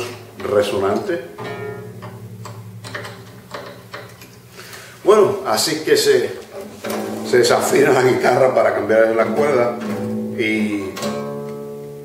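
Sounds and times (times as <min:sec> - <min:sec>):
low guitar note ringing: 0:01.2 - 0:12.0.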